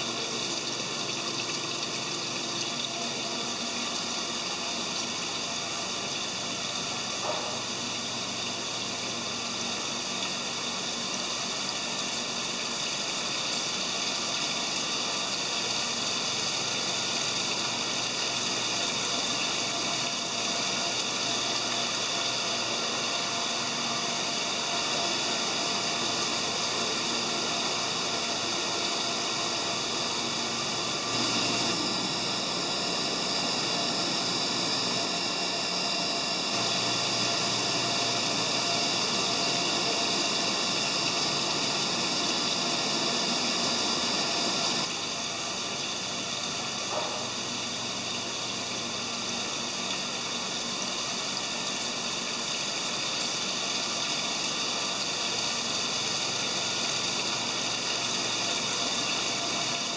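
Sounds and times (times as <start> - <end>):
pumps and aeration running: 0.0 - 59.9
water rushing through tanks: 0.0 - 59.9.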